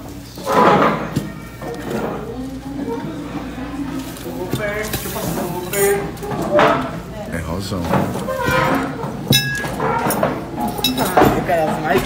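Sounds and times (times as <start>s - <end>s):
background chatter: 0.0s - 12.0s
tableware clinking: 7.8s - 12.0s.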